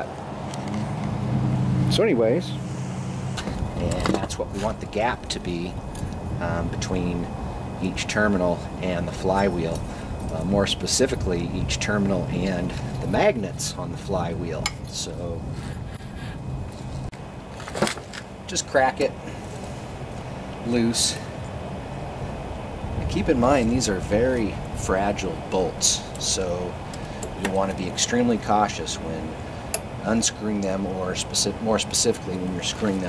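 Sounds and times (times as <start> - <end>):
low engine hum: 0.0 - 17.5.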